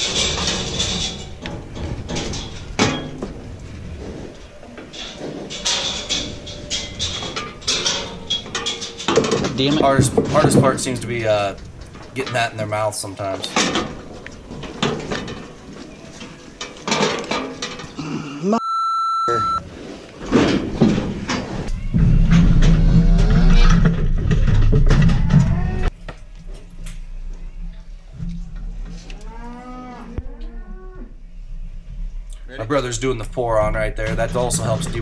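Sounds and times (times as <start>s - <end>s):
metal clattering: 0.0s - 18.0s, 20.2s - 27.2s, 31.8s - 35.0s
short electronic beep: 18.6s - 19.6s
cattle mooing: 29.1s - 31.2s.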